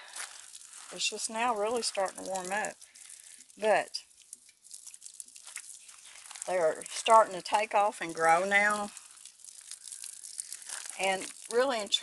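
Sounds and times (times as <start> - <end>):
water pouring onto soil: 0.0 - 12.0.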